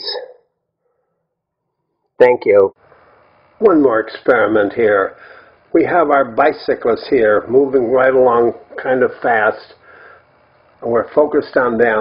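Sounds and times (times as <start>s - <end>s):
man speaking: 2.2s - 2.8s, 3.6s - 9.8s, 10.8s - 12.0s.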